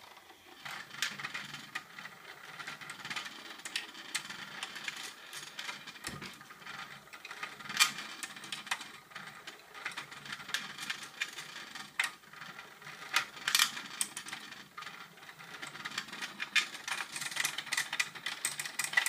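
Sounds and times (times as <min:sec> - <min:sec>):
vibrating toy rattling on plastic: 0:00.2 - 0:19.0.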